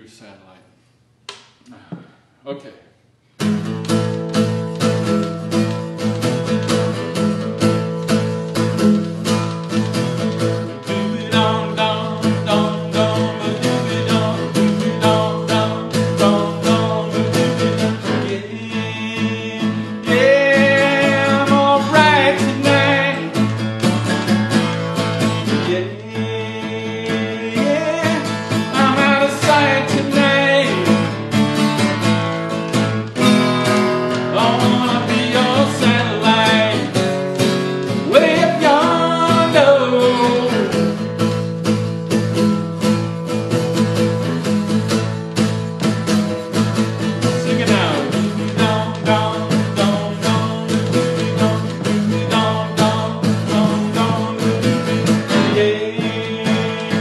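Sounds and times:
guitar playing: 0:03.2 - 0:57.0
man singing: 0:10.6 - 0:31.4, 0:34.0 - 0:41.1, 0:47.0 - 0:57.0.

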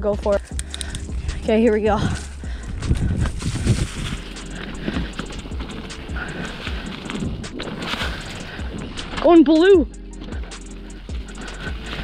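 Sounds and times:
bike rattling over bumps: 0:00.8 - 0:12.0
bike tyres on leaves: 0:01.1 - 0:12.0.

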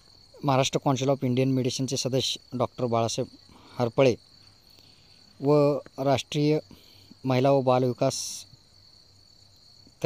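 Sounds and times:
faint high-pitched whine: 0:00.0 - 0:10.0.

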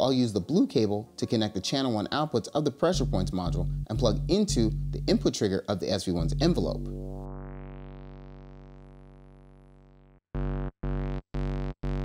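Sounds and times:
low sawtooth synth tone: 0:03.0 - 0:05.3, 0:06.2 - 0:12.0.

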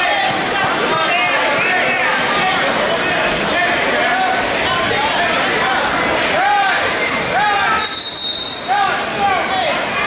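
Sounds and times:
gym crowd noise: 0:00.0 - 0:10.0
high whistle-like tone: 0:07.8 - 0:08.7.

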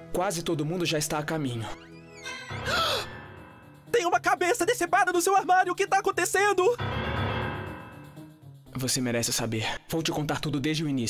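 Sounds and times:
quiet horror music: 0:00.0 - 0:08.5
person gasping: 0:02.6 - 0:03.1.

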